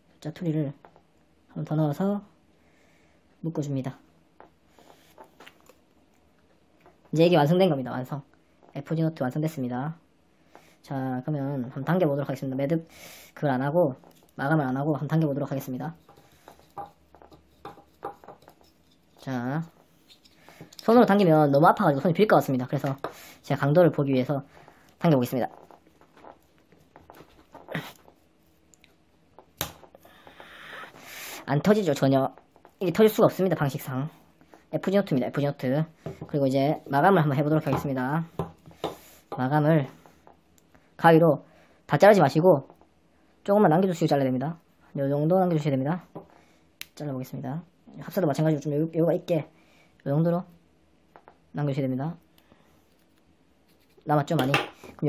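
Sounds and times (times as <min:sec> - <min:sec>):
soft rubs: 0:24.4 - 0:29.3, 0:52.8 - 0:54.1.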